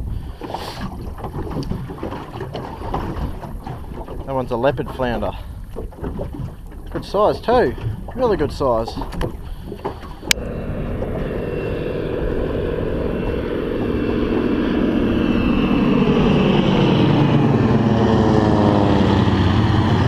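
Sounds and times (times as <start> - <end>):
aircraft engines droning overhead: 7.4 - 20.0.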